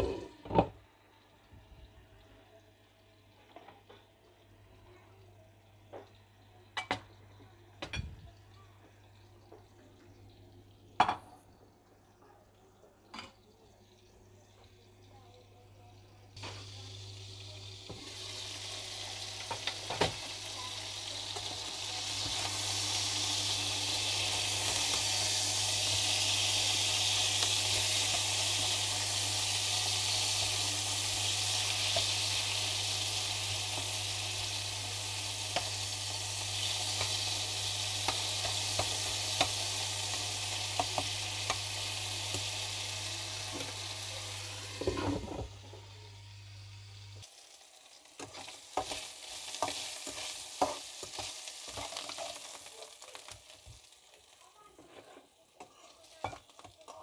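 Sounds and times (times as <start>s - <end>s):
chicken sizzling in oil: 16.0s - 57.0s
spatula scraping and tapping pan: 48.2s - 52.4s, 54.8s - 57.0s.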